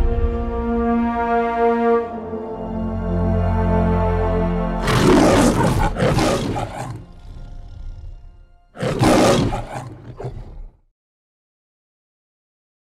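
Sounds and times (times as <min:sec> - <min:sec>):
held music chord: 0:00.0 - 0:08.8
lion roaring: 0:04.8 - 0:10.9.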